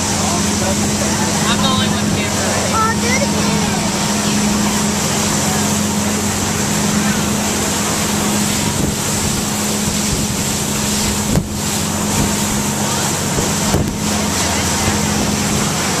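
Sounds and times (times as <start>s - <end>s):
motorboat engine drone: 0.0s - 16.0s
wind rush on microphone: 0.7s - 16.0s.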